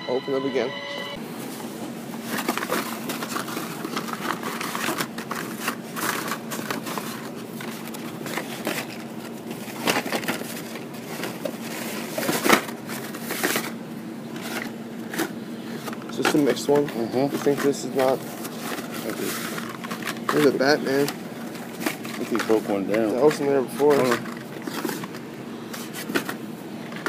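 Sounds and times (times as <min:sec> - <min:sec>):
steady hum: 0:00.0 - 0:27.0.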